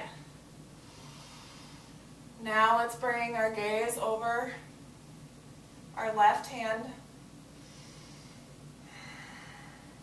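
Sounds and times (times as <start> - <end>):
person breathing through nose: 0.8 - 2.0, 7.6 - 10.0.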